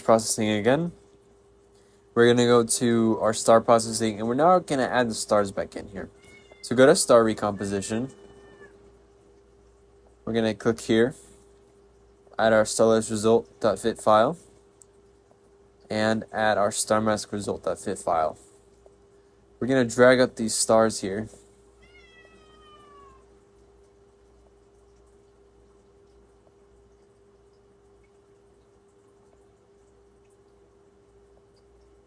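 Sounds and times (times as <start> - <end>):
cat meowing faintly: 6.2 - 6.7, 7.4 - 8.8, 21.8 - 23.3.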